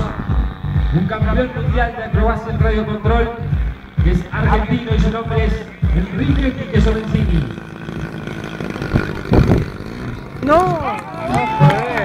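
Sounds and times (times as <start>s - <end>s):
model plane engine running: 0.0s - 12.0s.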